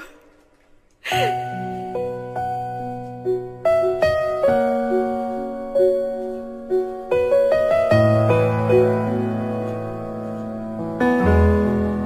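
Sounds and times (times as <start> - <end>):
slow piano music: 1.0 - 12.0.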